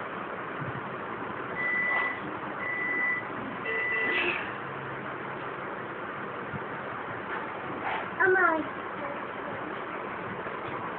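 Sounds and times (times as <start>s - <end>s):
high-pitched electronic beeps: 1.6s - 4.1s.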